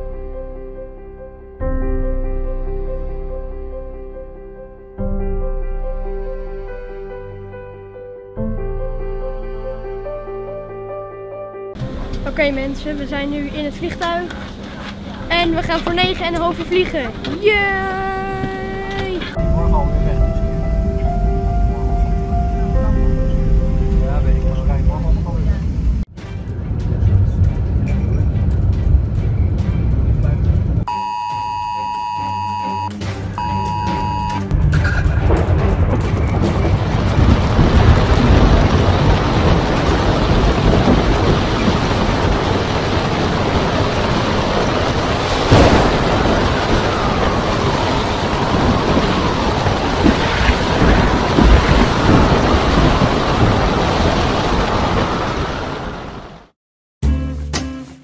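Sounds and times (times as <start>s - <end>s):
heavy rain: 11.8s - 30.9s, 33.4s - 56.6s
low rumble: 11.8s - 30.9s, 34.5s - 55.1s
held electronic beeps: 30.9s - 34.5s.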